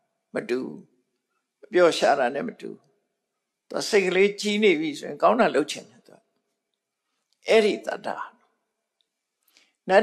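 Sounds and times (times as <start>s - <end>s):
man speaking: 0.4s - 0.8s, 1.7s - 2.8s, 3.7s - 5.8s, 7.5s - 8.3s.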